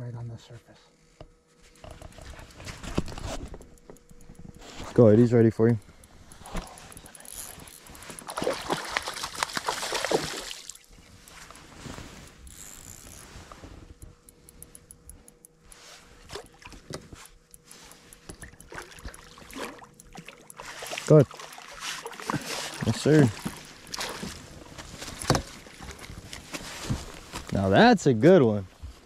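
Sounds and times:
faint steady hum: 0.0s - 29.0s
small clicks: 1.7s - 8.5s, 11.1s - 22.1s
fish splashing in water: 8.1s - 10.8s, 18.7s - 24.3s.

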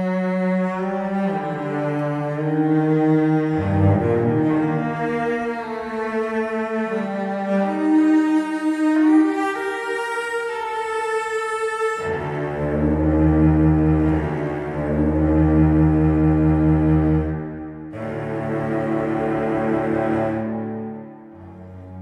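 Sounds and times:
solo cello bowed notes: 0.0s - 22.0s.

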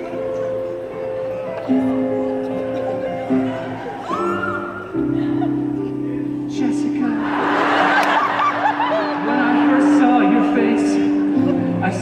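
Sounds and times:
audience laughing: 2.0s - 4.2s, 4.9s - 12.0s.

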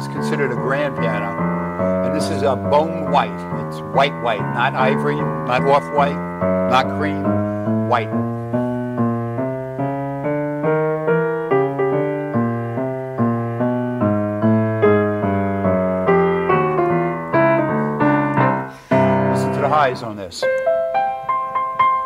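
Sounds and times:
grand piano playing: 0.0s - 22.0s.

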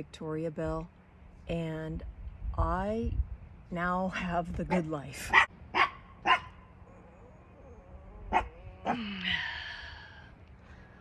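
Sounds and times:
dog barking: 5.3s - 6.6s.

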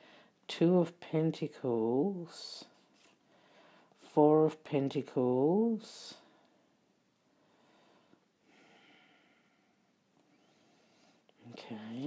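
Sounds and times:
faint breathing: 0.0s - 0.4s, 3.2s - 4.0s, 6.2s - 11.4s.

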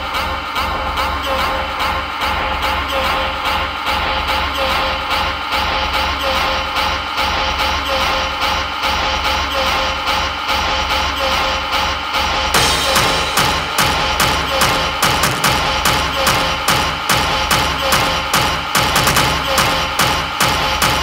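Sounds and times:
industrial techno music: 0.0s - 21.0s.

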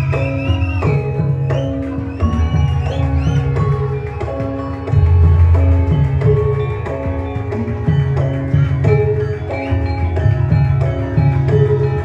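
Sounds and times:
drums beating: 0.0s - 12.0s
gong and metallophone notes: 0.0s - 12.0s
high wavering melody: 0.0s - 12.0s.

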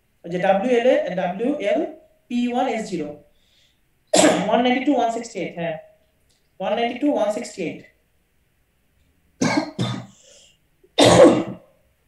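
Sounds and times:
person coughing: 4.2s - 4.6s, 9.4s - 10.4s, 11.0s - 11.7s.

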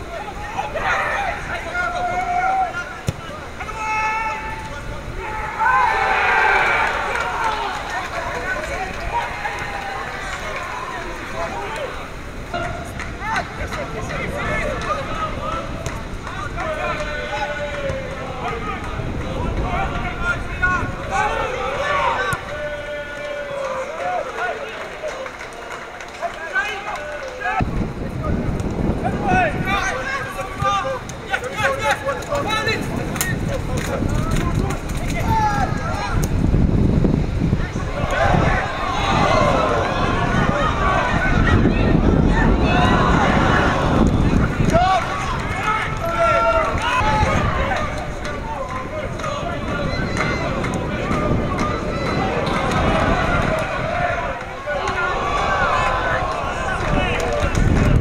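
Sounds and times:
voices shouting over one another: 0.0s - 24.9s, 37.5s - 58.0s.

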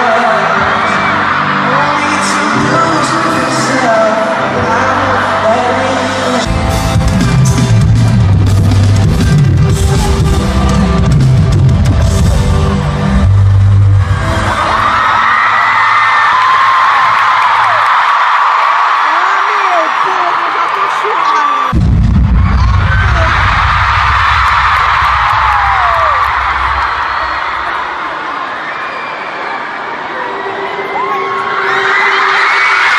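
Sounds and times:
concert music with deep bass: 0.0s - 15.2s
crowd screaming: 0.0s - 32.9s.

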